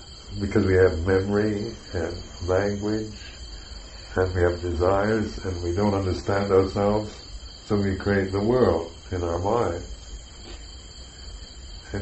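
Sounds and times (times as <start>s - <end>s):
low steady hum: 0.0s - 12.0s
night insects chirping: 0.0s - 12.0s.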